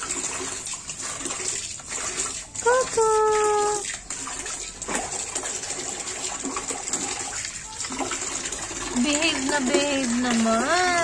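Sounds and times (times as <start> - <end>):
water running: 0.0 - 11.0
water splashing in a tub: 0.0 - 11.0.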